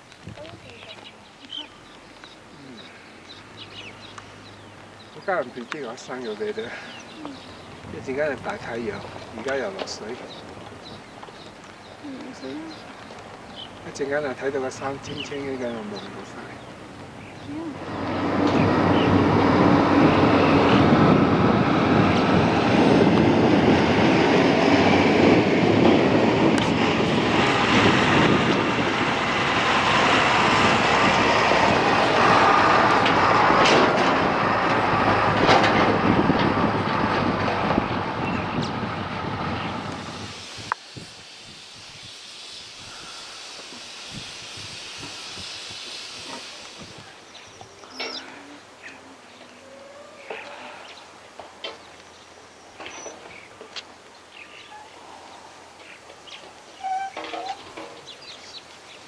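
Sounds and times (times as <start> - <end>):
quiet outdoor background: 0.0 - 27.7, 28.5 - 59.0
wind buffeting microphone: 3.3 - 49.6.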